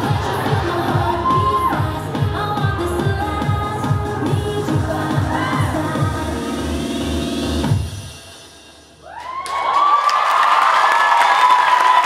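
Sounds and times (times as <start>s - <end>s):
audience cheering and shouting: 0.0s - 2.1s, 5.0s - 6.1s, 9.0s - 12.0s
pop song with heavy beat: 0.0s - 8.2s
audience clapping: 9.2s - 12.0s.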